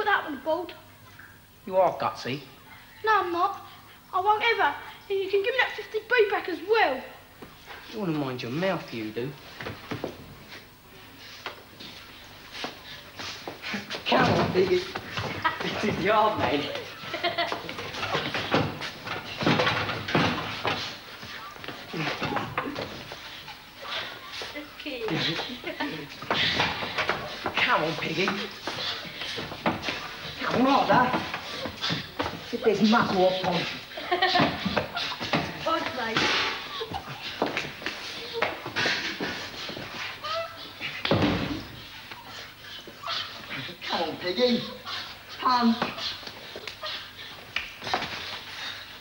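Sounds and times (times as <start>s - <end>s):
boys laughing and shouting: 13.7s - 18.6s, 21.2s - 42.3s
boy whimpering: 40.2s - 40.9s.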